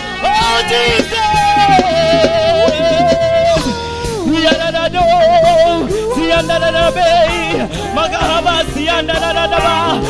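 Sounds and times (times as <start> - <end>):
instrumental accompaniment: 0.0 - 10.0
man singing gospel song: 0.2 - 10.0.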